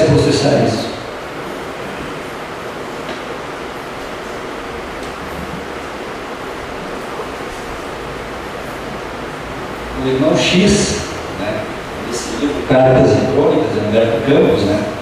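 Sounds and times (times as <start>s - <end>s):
steady recording hiss: 0.0s - 15.0s.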